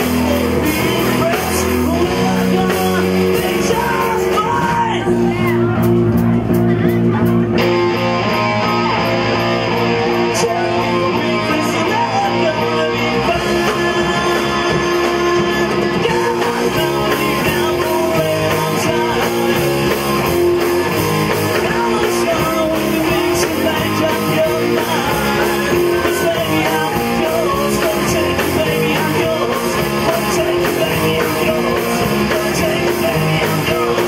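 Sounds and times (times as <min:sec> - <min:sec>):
rock band playing: 0:00.0 - 0:34.0.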